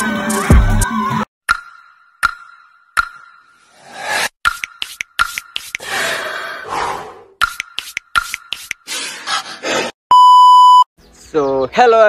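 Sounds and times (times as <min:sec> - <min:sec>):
censor bleep: 0:10.1 - 0:10.9.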